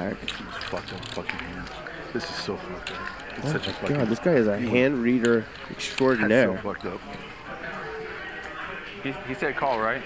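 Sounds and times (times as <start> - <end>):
murmur of distant voices: 0.0 - 10.0.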